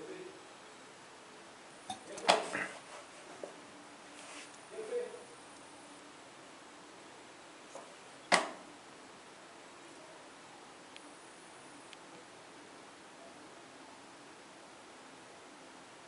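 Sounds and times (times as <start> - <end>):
room noise hiss: 0.0 - 16.0.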